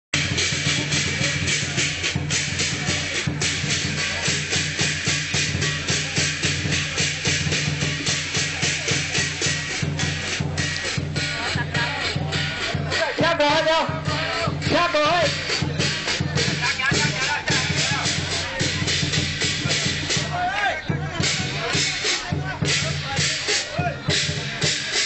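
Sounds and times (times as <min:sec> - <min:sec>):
hand cymbals crashing: 0:00.2 - 0:20.4, 0:21.2 - 0:25.0
large drum beating: 0:00.2 - 0:25.0.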